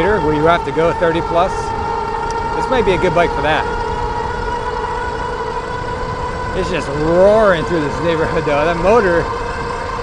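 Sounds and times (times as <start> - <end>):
electric motor whine: 0.0 - 10.0
tires rumbling on pavement: 0.0 - 10.0
wind rush: 0.0 - 10.0.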